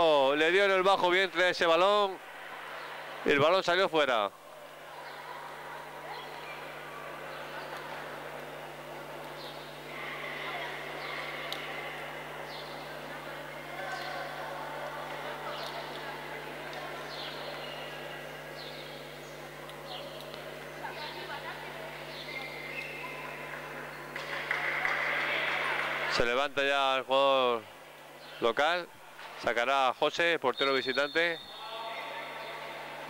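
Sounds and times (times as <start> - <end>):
low electrical hum: 0.0 - 33.0
chatter of voices: 1.9 - 29.6.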